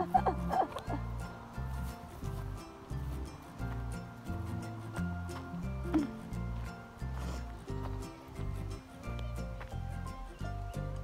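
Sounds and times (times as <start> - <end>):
music with rhythmic bass line: 0.0 - 11.0.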